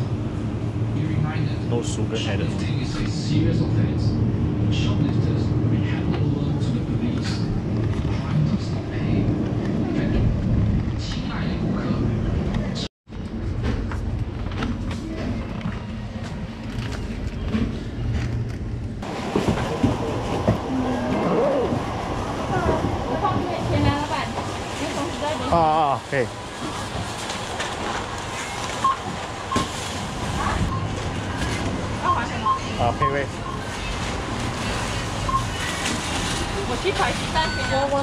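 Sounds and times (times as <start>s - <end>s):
indistinct voices: 19.2s - 26.3s.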